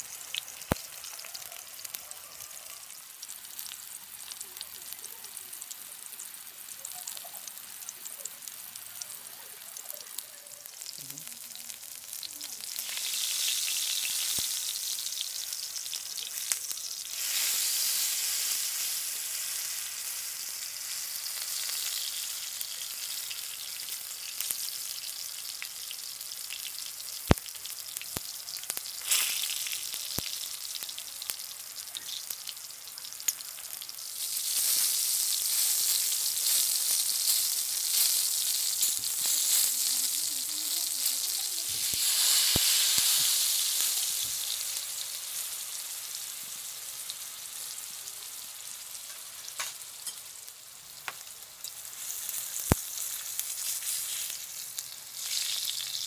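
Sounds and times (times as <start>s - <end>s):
food sizzling in hot oil: 0.0s - 56.0s.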